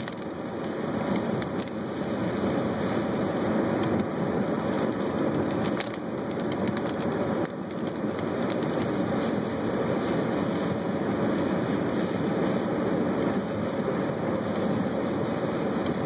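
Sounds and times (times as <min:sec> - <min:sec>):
rain ticking on windshield: 0:00.0 - 0:16.0
tyres rushing on wet road: 0:00.0 - 0:16.0.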